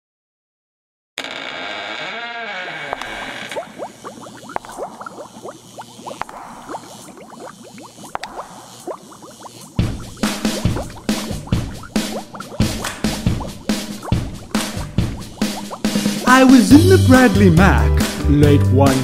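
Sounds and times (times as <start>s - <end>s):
creaking wavering tone: 1.2s - 15.9s
bubbling and gurgling: 2.8s - 16.2s.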